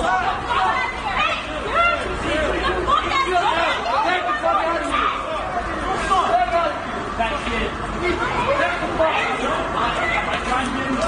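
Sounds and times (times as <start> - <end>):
crowd shouting and talking: 0.0 - 11.0.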